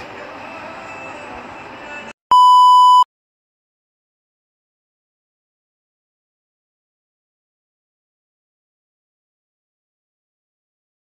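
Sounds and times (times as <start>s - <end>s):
high test-tone beep: 2.3s - 3.1s.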